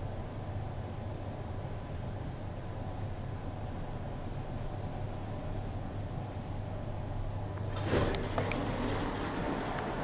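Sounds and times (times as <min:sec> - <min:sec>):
elevator car hum: 0:00.0 - 0:10.0.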